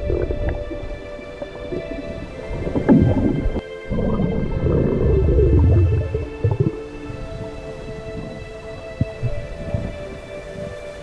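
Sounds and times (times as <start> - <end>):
underwater rumbling and crackling: 0.0 - 10.8
background music with held notes: 0.0 - 11.0.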